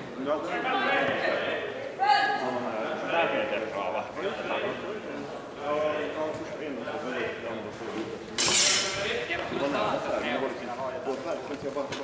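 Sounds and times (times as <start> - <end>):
steel swords clashing: 8.4 - 9.0.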